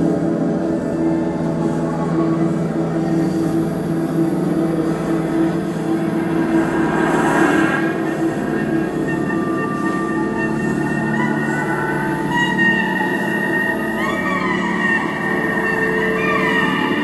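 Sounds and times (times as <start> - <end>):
held electronic drone tones: 0.0 - 17.0
pulsing low tone: 2.3 - 17.0
high hissing noise: 3.2 - 12.4.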